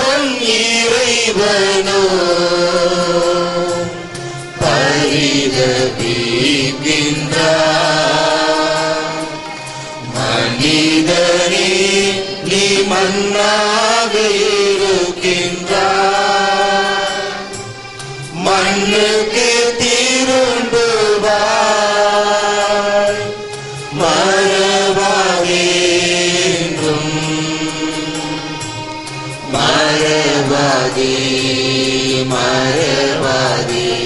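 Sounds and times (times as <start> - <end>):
hymn chanted in one melodic line: 24.0 - 34.0.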